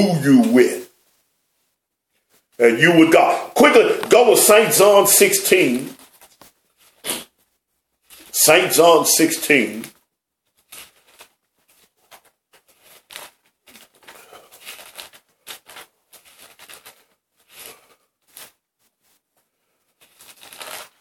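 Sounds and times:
thin pages flipping: 5.7 - 8.3, 9.9 - 21.0.

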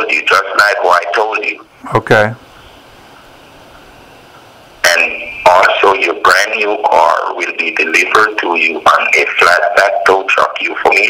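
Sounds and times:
voice on telephone: 0.0 - 2.4, 4.8 - 11.0
telephone line hiss: 2.6 - 11.0.

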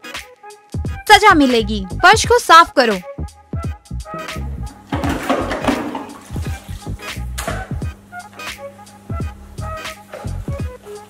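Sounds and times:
background music with low beat: 0.0 - 11.0
rushing water-like noise: 5.0 - 7.1.

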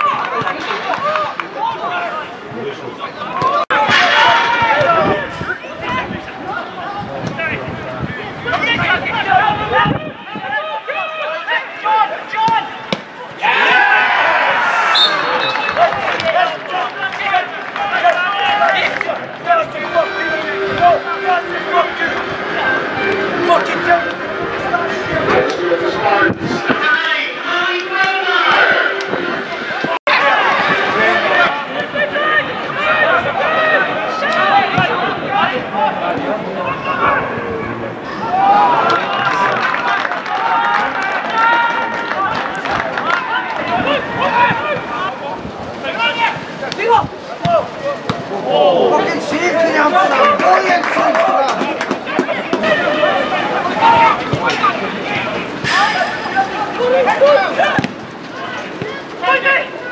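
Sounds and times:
men shouting and cheering: 0.0 - 59.9.

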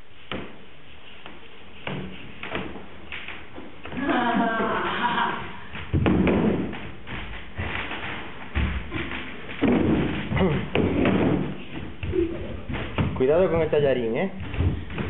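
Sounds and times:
thuds and sharp knocks: 5.8 - 13.2, 14.3 - 15.0.

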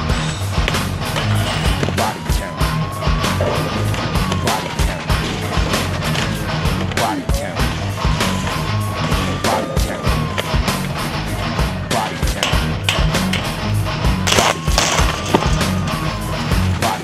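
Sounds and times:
music with heavy beat: 0.0 - 17.0.

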